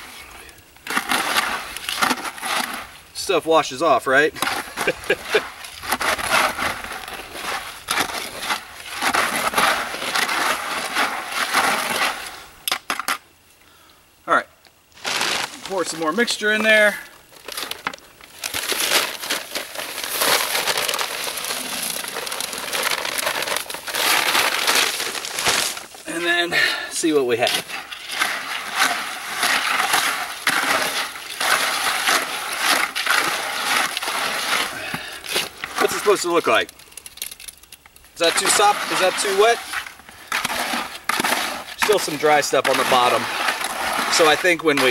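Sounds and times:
concrete mix stirred in bucket: 0:00.0 - 0:12.5, 0:15.0 - 0:44.9.

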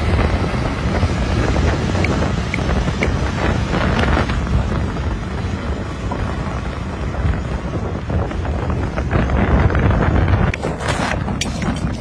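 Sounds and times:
diesel engine rumble: 0:00.0 - 0:12.0
wind buffeting microphone: 0:00.0 - 0:12.0.

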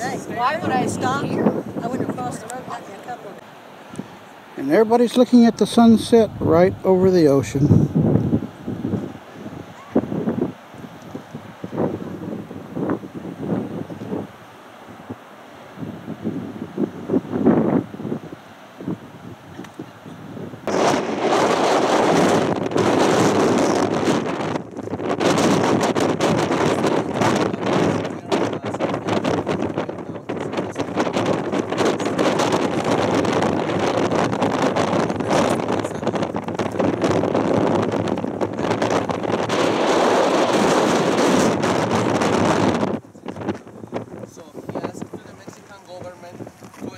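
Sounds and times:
wind buffeting microphone: 0:00.0 - 0:46.9.

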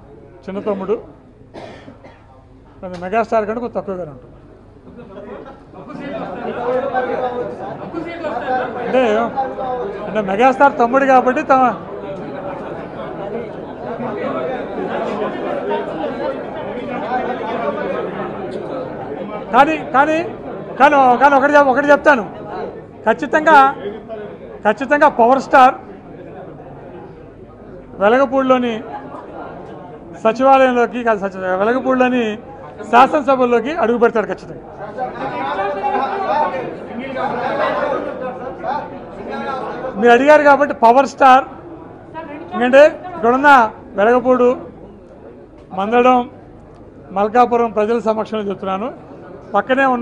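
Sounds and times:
chatter of many voices: 0:00.0 - 0:50.0
overlapping voices chattering: 0:32.2 - 0:47.6.

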